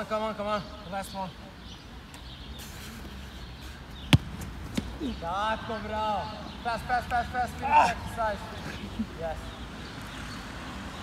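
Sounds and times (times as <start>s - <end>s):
football kicked hard: 4.1s - 5.0s
soft thud: 4.1s - 5.0s.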